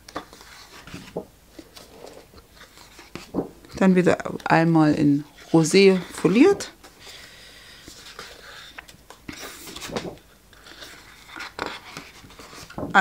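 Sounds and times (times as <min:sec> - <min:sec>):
paper sheets rustling: 0:00.0 - 0:13.0.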